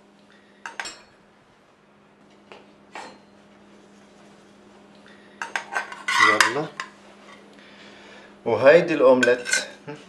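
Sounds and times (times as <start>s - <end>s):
spatula scraping frying pan: 5.5s - 7.4s.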